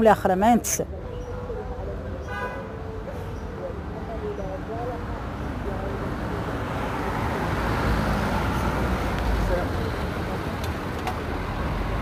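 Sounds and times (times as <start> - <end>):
faint voices: 0.5 - 7.5
vehicle passing: 4.8 - 12.0.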